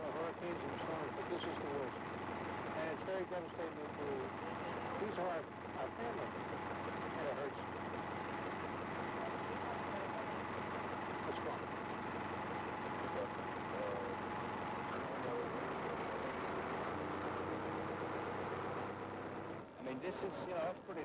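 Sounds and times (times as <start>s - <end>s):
bulldozer diesel engine running: 0.0s - 21.0s.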